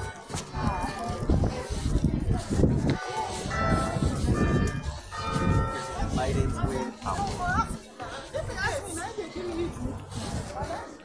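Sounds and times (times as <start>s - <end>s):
low rumble of street noise: 0.0s - 11.0s
bells ringing: 3.0s - 7.1s.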